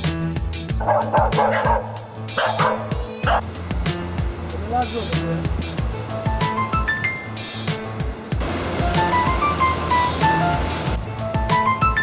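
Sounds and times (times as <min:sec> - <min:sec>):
background music with steady beat: 0:00.0 - 0:12.0
dog barking: 0:00.8 - 0:03.5.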